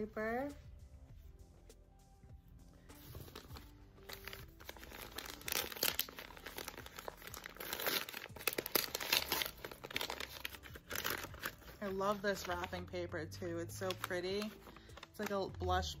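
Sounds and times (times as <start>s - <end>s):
wrapping paper crinkling: 2.9s - 12.9s, 13.6s - 15.4s.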